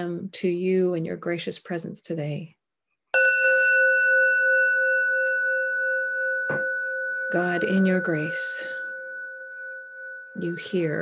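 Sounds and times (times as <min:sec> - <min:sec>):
singing bowl ringing: 0:03.2 - 0:11.0.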